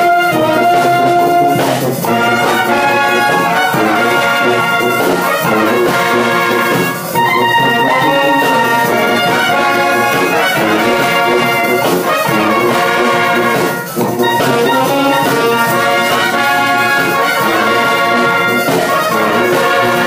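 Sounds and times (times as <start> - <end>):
brass band playing chords: 0.0 - 20.0.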